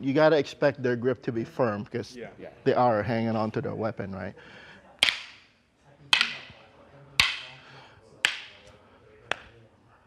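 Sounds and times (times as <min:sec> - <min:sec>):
stick striking sharp cracks: 0:05.0 - 0:05.5, 0:06.1 - 0:06.6, 0:07.2 - 0:08.7.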